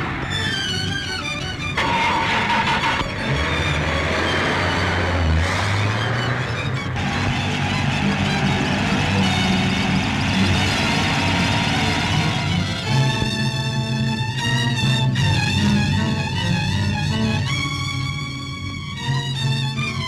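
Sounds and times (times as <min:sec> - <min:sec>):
background score music: 0:00.0 - 0:20.0
car engine running: 0:00.0 - 0:20.0.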